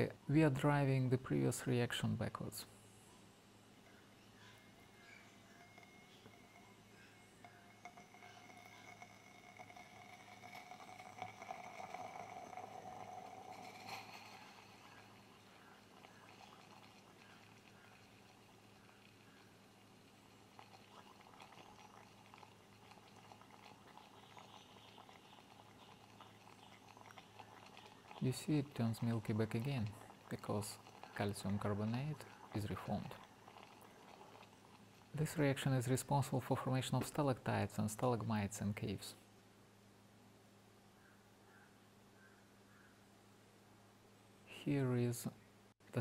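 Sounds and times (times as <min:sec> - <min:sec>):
liquid boiling in test tube: 0:00.0 - 0:39.0
low steady hum: 0:00.0 - 0:46.0.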